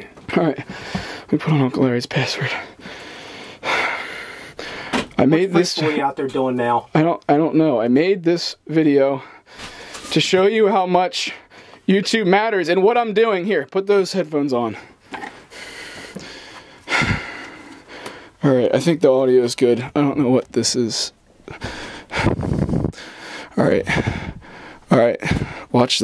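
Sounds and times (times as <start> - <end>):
person breathing out hard: 0.6 - 1.3, 2.7 - 5.1, 14.8 - 18.4, 21.5 - 25.7
soft breath or rustle: 9.4 - 10.1.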